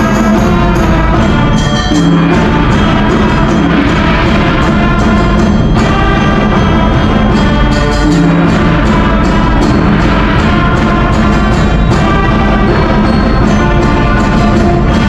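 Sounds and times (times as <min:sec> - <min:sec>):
concert band playing: 0:00.0 - 0:15.0.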